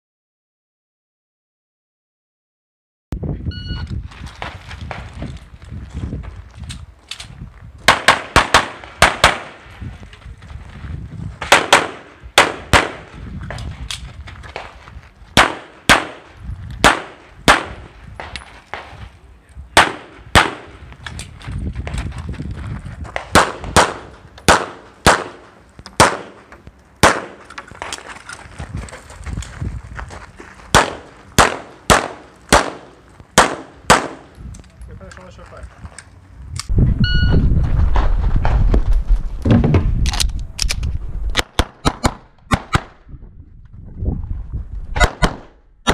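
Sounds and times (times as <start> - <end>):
pistol firing rapidly: 7.9 - 9.6, 11.5 - 13.1, 15.4 - 16.2, 16.8 - 17.8, 19.8 - 20.7, 23.3 - 25.4, 26.0 - 26.4, 27.0 - 27.4, 30.7 - 34.2, 45.0 - 45.9.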